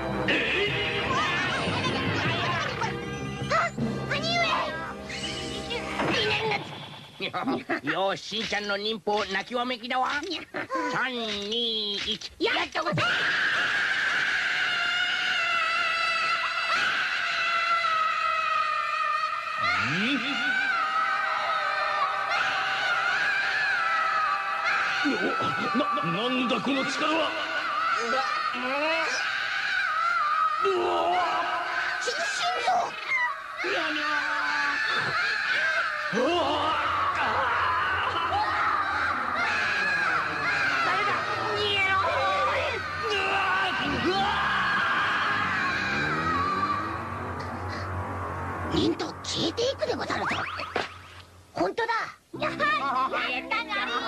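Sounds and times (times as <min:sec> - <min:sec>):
cartoon character screaming: 0:13.0 - 0:47.1.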